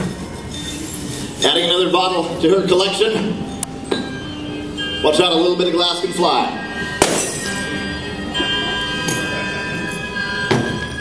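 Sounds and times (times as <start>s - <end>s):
background music with sustained notes: 0.0s - 11.0s
hammer smashing glass bottles: 7.0s - 7.6s.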